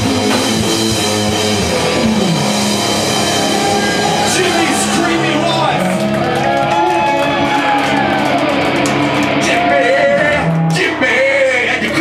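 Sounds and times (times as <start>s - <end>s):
drums: 0.0s - 12.0s
electric guitar: 0.0s - 12.0s.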